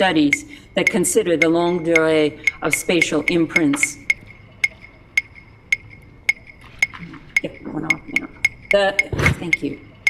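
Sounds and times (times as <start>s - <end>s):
measuring rods clicking with ring: 0.0s - 10.0s.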